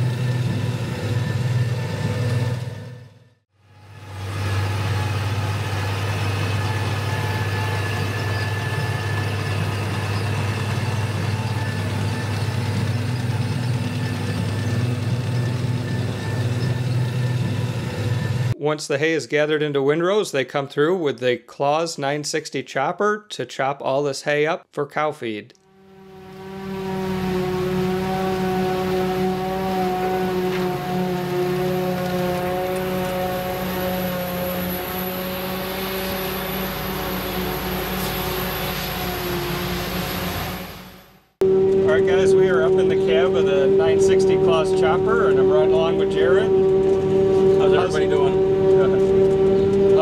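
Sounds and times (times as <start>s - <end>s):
steady drone: 0.0s - 18.6s, 25.6s - 50.0s.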